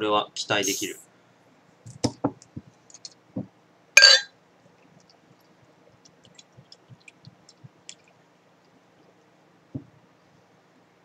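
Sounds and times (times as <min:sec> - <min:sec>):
glass clinking: 0:04.0 - 0:04.3.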